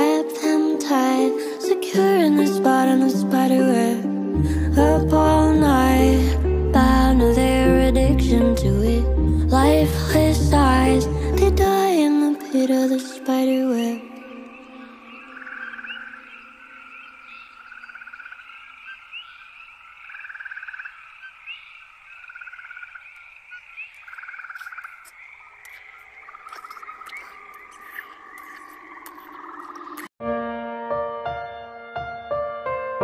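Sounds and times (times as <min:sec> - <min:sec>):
frogs trilling: 0:13.7 - 0:30.1
high chirps: 0:20.2 - 0:30.1.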